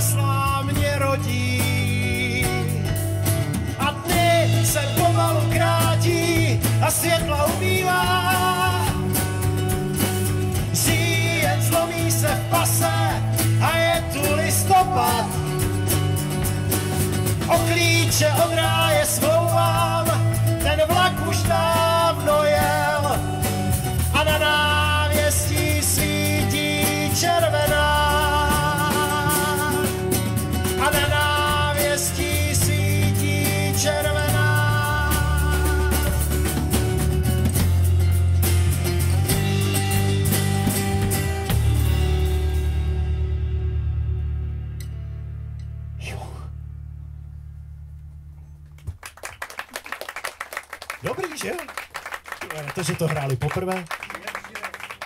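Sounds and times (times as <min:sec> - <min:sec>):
strummed acoustic guitars: 0:00.0 - 0:44.0
live band playing: 0:00.0 - 0:45.0
drum kit: 0:00.0 - 0:46.4
electric bass guitar: 0:00.0 - 0:49.5.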